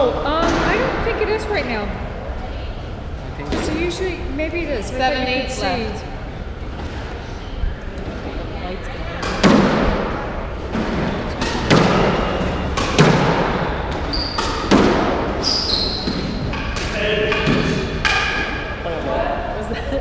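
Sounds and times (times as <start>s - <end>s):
squash ball struck by racquets: 9.2s - 18.8s.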